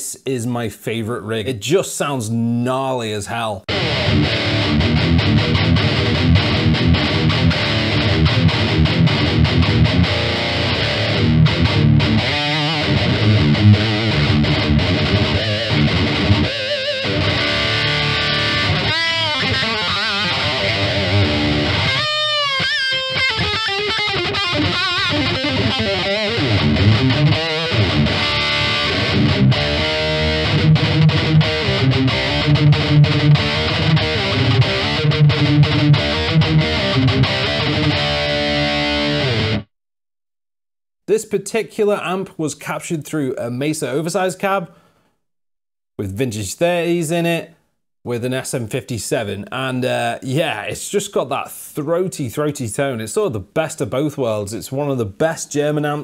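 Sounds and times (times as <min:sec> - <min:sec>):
distorted electric guitar riffing: 0:03.7 - 0:39.7.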